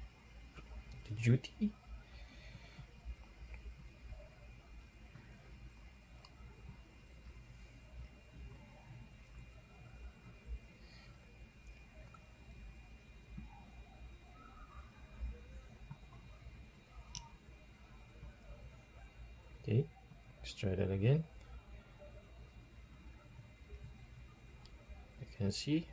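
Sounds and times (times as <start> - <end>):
faint electrical hum: 0.0 - 25.9.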